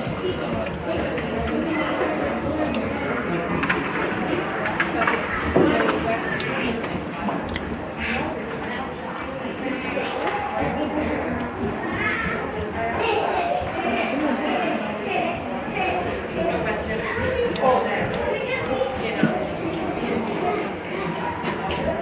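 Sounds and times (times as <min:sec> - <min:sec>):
spectator chatter: 0:00.0 - 0:22.0.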